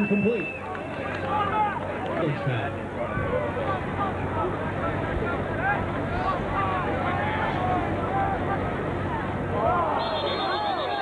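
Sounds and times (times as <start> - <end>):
crowd voices talking and calling: 0.0 - 11.0.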